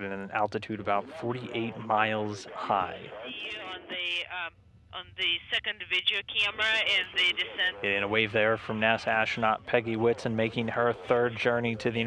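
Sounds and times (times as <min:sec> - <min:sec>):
radio speech: 0:00.0 - 0:12.0.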